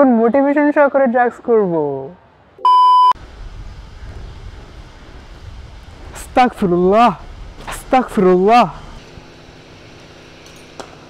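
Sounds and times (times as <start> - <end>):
low background hum: 0.1 - 11.0
loud electronic beep: 2.6 - 3.2.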